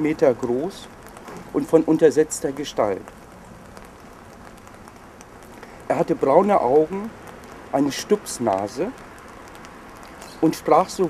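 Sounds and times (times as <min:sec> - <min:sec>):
steady light rain hiss: 0:00.0 - 0:11.0
faint dripping ticks: 0:00.4 - 0:11.0.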